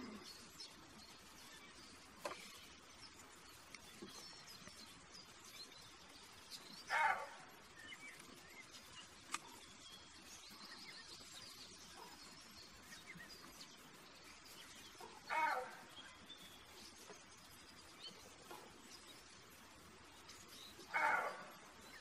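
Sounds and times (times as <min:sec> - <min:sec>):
faint bird chirps: 0:00.0 - 0:22.0
deer barking: 0:06.9 - 0:07.6, 0:15.0 - 0:16.0, 0:20.8 - 0:21.8.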